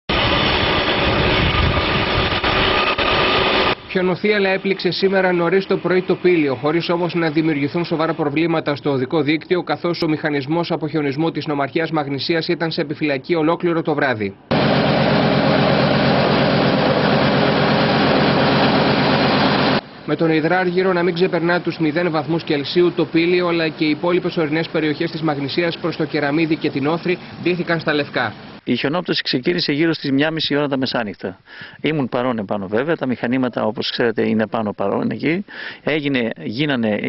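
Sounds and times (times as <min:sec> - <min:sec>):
plow blade pushing snow: 0:00.1 - 0:03.8, 0:14.5 - 0:19.8, 0:21.1 - 0:28.6
diesel engine under load: 0:00.1 - 0:08.3, 0:14.5 - 0:28.6.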